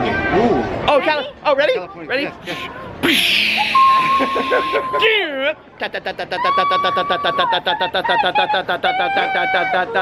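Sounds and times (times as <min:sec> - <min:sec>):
excited shrieking and exclaiming: 0:02.5 - 0:05.1.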